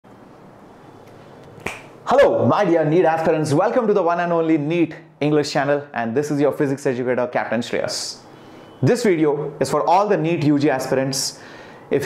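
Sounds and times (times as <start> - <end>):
finger snap: 1.0 - 2.0.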